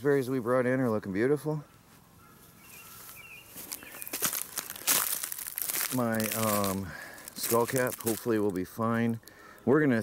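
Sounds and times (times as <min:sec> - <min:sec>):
footsteps crunching on bark chips: 0:01.9 - 0:09.2.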